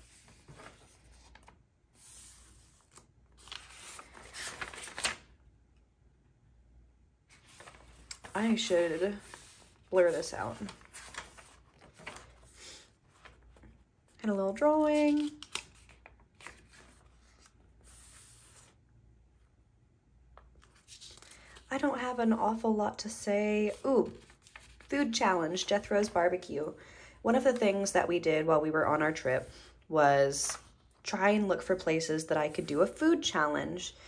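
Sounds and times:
paper pages rustling: 0.0 - 5.4, 7.3 - 18.8, 20.4 - 22.0, 23.6 - 26.4.

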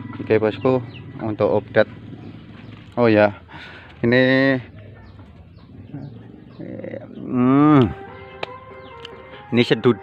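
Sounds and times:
faint bird calls: 0.0 - 9.2.

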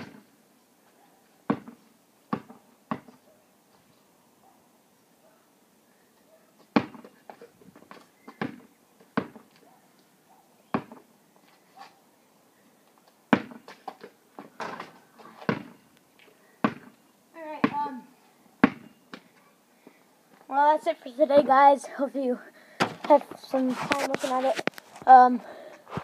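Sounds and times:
basketball bouncing: 1.5 - 3.2, 6.7 - 7.1, 8.3 - 9.5, 10.8 - 11.0, 13.3 - 13.7, 14.6 - 15.8, 16.6 - 16.9, 17.6 - 18.0, 18.6 - 18.9.

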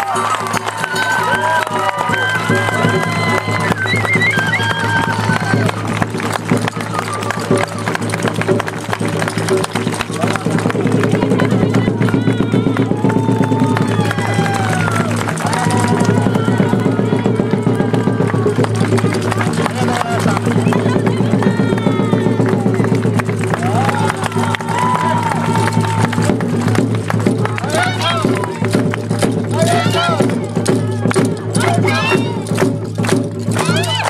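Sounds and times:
continuous drumming: 0.0 - 34.0.

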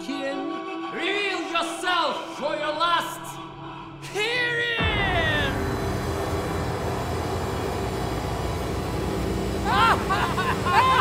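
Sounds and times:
low rumbling drone: 4.8 - 11.0.

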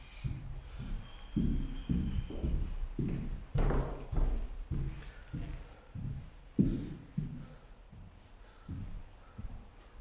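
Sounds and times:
footsteps on carpet: 0.0 - 10.0.

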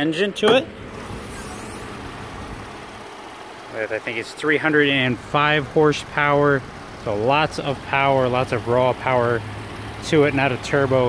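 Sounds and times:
car engine idling: 0.3 - 11.0.

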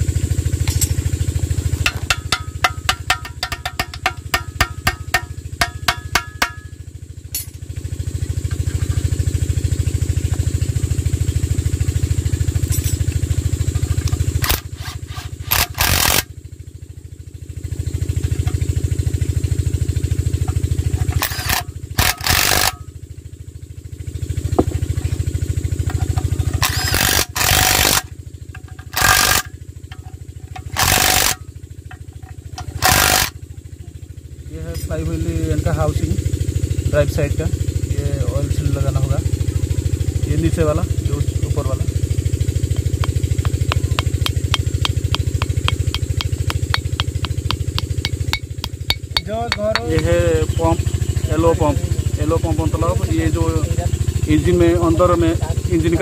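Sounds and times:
hammer taps: 1.8 - 6.6, 42.8 - 50.1
impact wrench driving bolts: 1.8 - 6.6, 14.0 - 16.3, 20.9 - 22.8, 25.8 - 33.4, 42.8 - 50.0.

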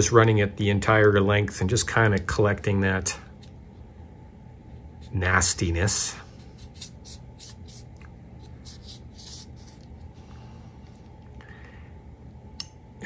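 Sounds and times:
cotton swab scratching inside knife: 3.3 - 10.2.

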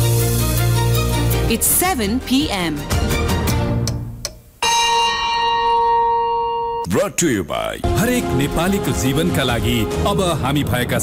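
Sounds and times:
bell-like chime ringing: 4.6 - 7.0.

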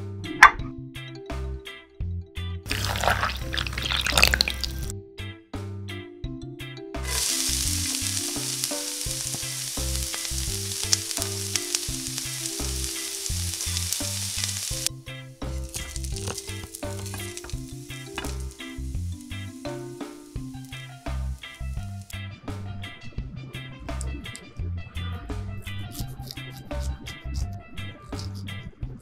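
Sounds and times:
meat sizzling in hot oil: 2.7 - 4.9, 7.0 - 22.2
oil pouring into wok: 2.7 - 4.9, 7.0 - 14.9, 15.5 - 22.1.

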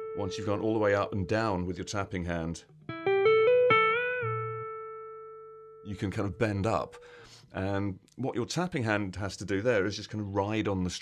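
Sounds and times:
clean electric guitar note ringing: 0.0 - 1.5, 2.9 - 7.2.

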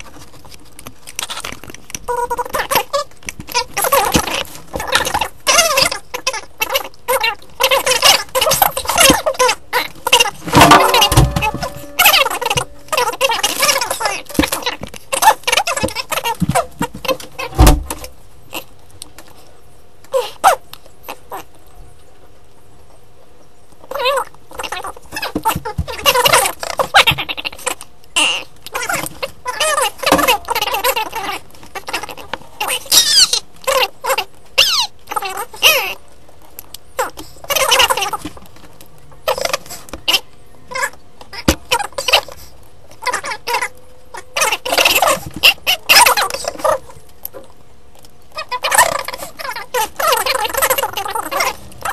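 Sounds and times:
fast-forwarded squeaky voices: 1.2 - 17.7, 23.9 - 36.1, 37.0 - 38.4, 39.2 - 47.5, 48.3 - 51.9
low hum: 10.4 - 14.6.

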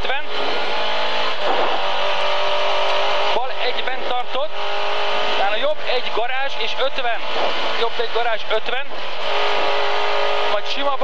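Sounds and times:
car engine running hard: 0.0 - 11.0.

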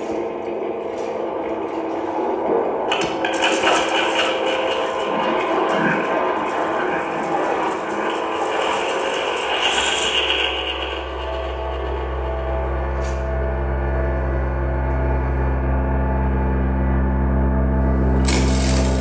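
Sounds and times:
deep low drone: 0.0 - 19.0
electronic noise music: 0.0 - 19.0.

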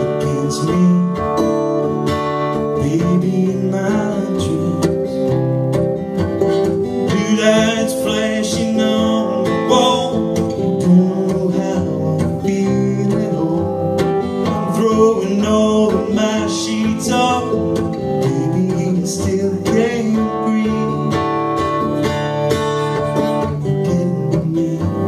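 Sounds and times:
man singing: 0.0 - 5.5, 6.2 - 25.0
acoustic guitar strumming: 0.0 - 25.0.

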